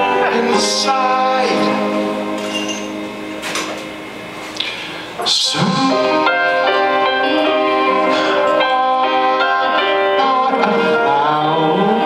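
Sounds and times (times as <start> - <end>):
band playing held notes: 0.0 - 12.0.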